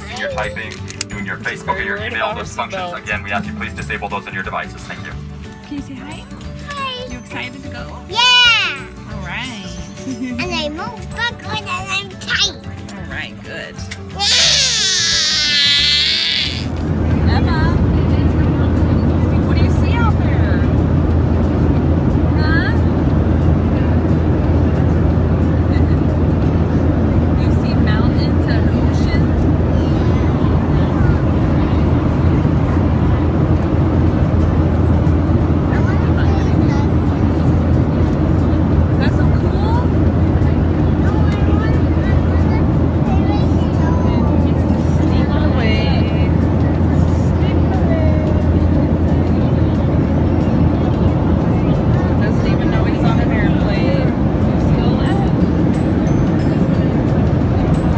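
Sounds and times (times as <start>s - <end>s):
faint voices: 0.0s - 5.1s, 11.3s - 57.9s
jet airliner cabin drone: 16.7s - 57.9s.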